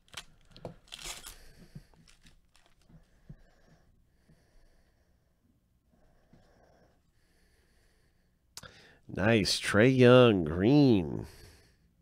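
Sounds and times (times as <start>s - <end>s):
plastic wrapper tearing and crinkling: 0.0s - 2.9s.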